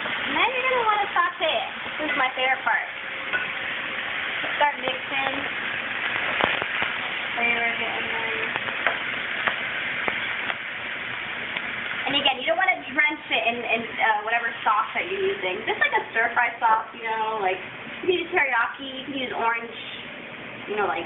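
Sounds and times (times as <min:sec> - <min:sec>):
food sizzling in oil: 0:00.0 - 0:21.0.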